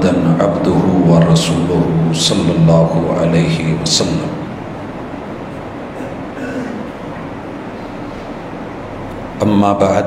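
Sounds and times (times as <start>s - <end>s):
steady rumbling background noise: 0.0s - 10.0s.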